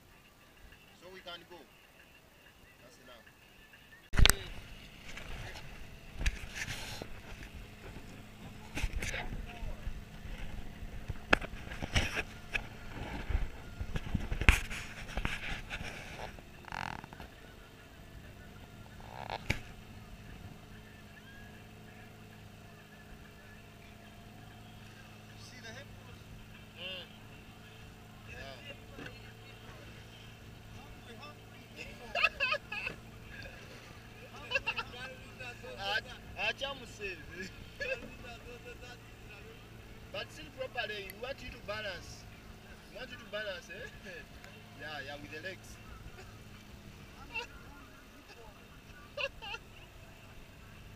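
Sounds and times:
boat engine running: 0:00.0 - 0:50.9.

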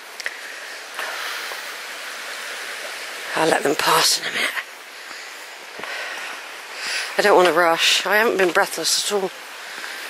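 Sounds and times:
stream running: 0:00.0 - 0:10.0.

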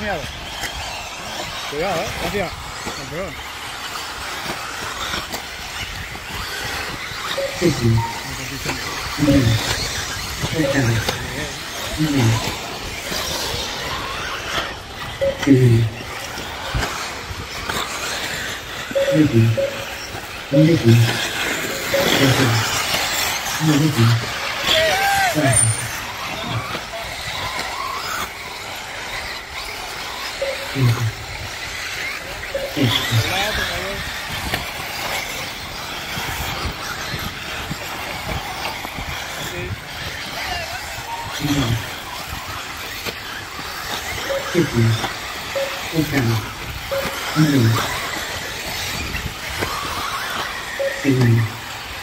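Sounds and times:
man talking: 0:00.0 - 0:00.3, 0:01.6 - 0:03.4, 0:07.3 - 0:13.4, 0:15.2 - 0:16.1, 0:18.7 - 0:26.8, 0:30.4 - 0:31.2, 0:32.5 - 0:34.0, 0:39.4 - 0:39.9, 0:40.5 - 0:42.0, 0:44.3 - 0:48.0, 0:50.8 - 0:51.6
rc buggies running on dirt: 0:00.0 - 0:52.0
rising and falling whines: 0:00.0 - 0:52.0.

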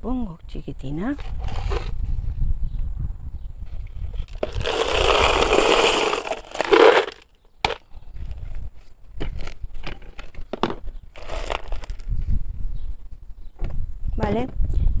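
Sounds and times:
potting mix crunching in plastic pot: 0:04.2 - 0:07.9, 0:11.1 - 0:12.1.

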